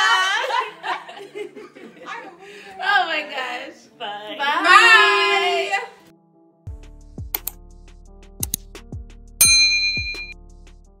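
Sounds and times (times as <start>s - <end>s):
instrumental beat with kick drums: 6.7s - 10.9s
bright bell-like ding: 9.4s - 10.4s.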